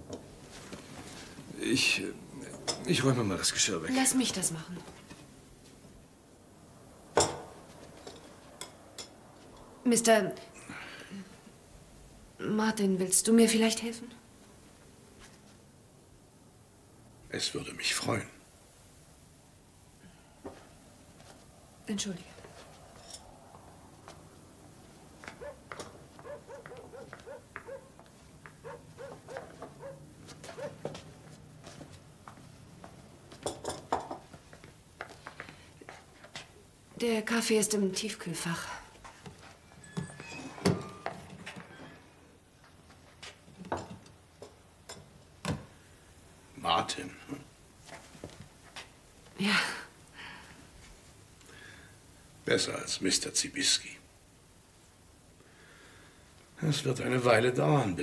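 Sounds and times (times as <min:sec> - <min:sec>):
china cups clinking: 0:39.7 - 0:42.0.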